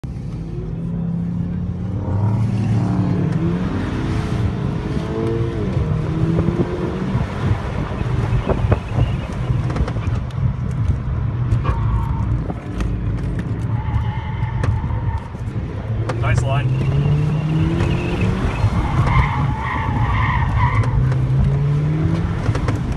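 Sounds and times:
car engine accelerating: 0.0s - 22.9s
tires squealing: 6.8s - 10.2s, 11.5s - 22.9s.

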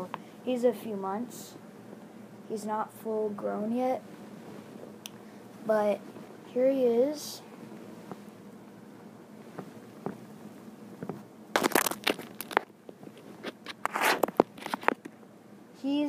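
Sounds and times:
lizard claws scraping microphone: 11.1s - 15.1s.

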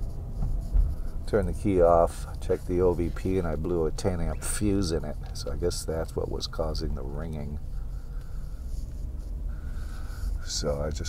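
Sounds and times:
car engine and road rumble: 0.0s - 11.0s
faint thin whine: 0.0s - 11.0s.

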